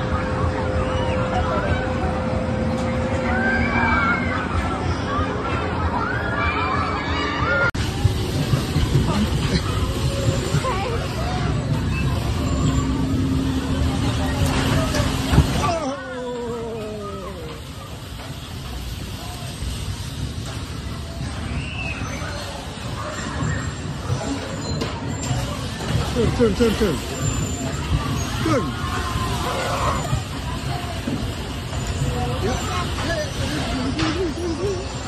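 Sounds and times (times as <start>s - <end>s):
steady hum: 0.0s - 7.0s, 7.7s - 21.5s
bumper car low rumble: 0.0s - 35.0s
crowd chatter: 0.0s - 35.0s.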